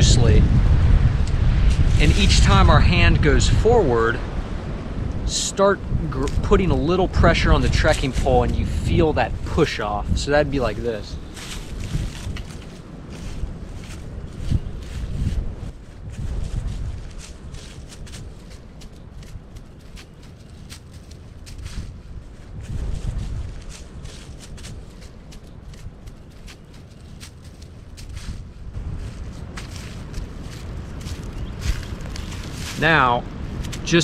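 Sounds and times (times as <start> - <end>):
footsteps crunching through leaves: 10.6 - 34.0.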